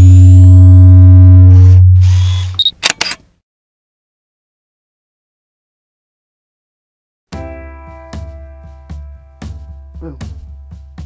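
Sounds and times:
loud deep hum with tones: 0.0 - 2.6
short high beep: 0.0 - 2.8
camera shutter clicking: 2.6 - 3.2.

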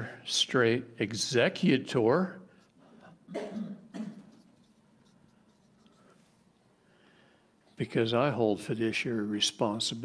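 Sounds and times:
person coughing: 3.3 - 4.4.

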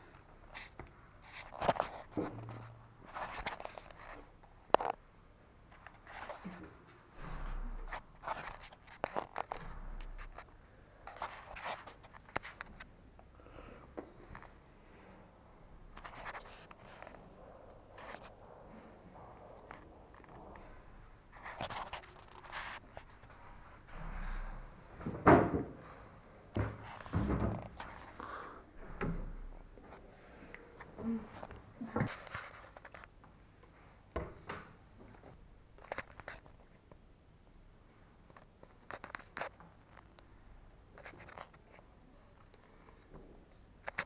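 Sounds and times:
irregular knocks and thuds: 23.5 - 25.9, 26.5 - 27.8, 28.8 - 29.8.

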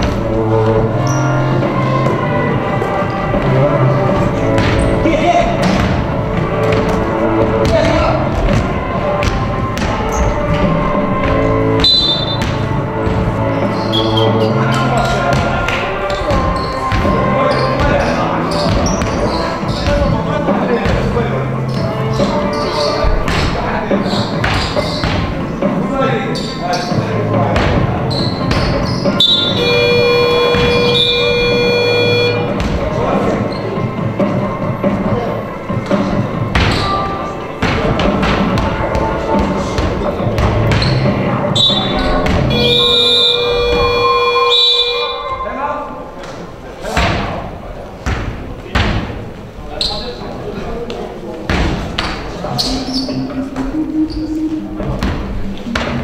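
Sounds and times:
electronic game buzzer: 29.5 - 32.5.

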